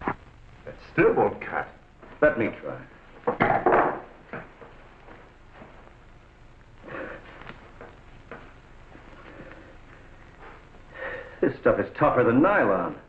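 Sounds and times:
film soundtrack hiss: 0.0 - 13.0.

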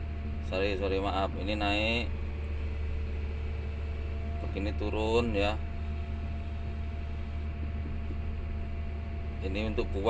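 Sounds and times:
excavator diesel engine droning: 0.0 - 10.0
faint hydraulic whine: 0.0 - 10.0.

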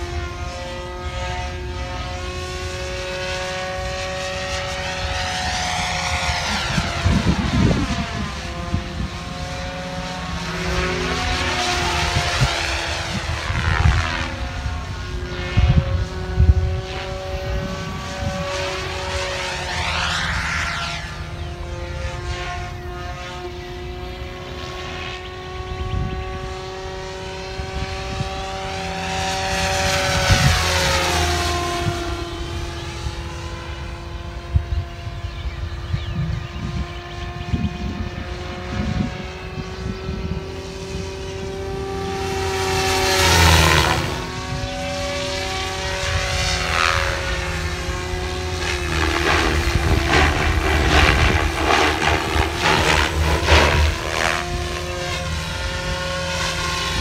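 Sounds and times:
rc helicopter whine: 0.0 - 57.0.

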